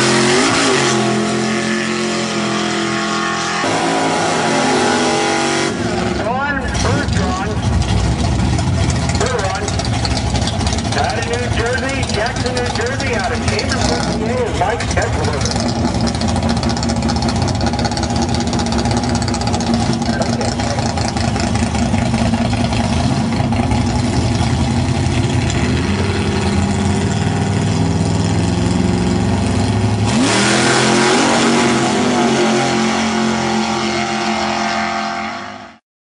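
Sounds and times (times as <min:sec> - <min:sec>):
drag racing engines roaring: 0:00.0 - 0:35.8.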